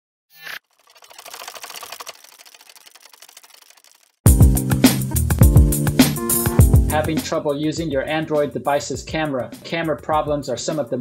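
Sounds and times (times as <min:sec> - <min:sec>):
rapid fine clicks: 0:00.7 - 0:04.3.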